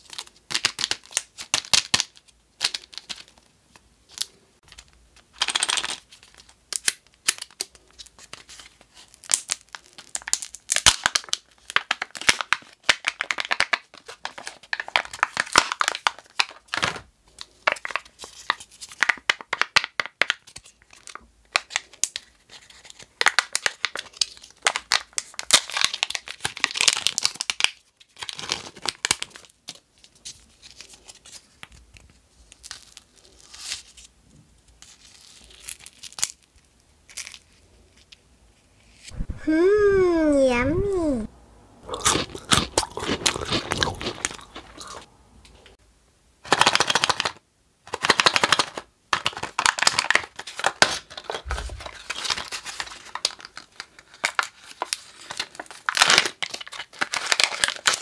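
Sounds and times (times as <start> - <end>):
foil wrapper crinkling and tearing: 0.0 - 3.5, 4.1 - 34.1, 34.7 - 37.7, 46.4 - 58.0.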